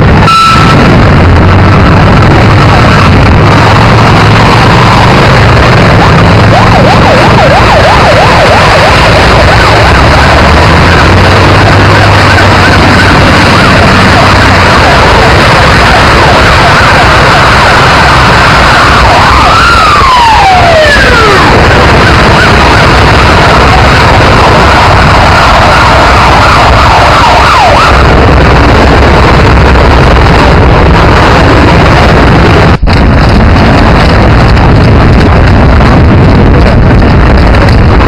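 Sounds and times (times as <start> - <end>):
steady rushing noise: 0.0 - 38.0
wailing siren: 0.0 - 38.0
yelping siren: 0.2 - 32.7.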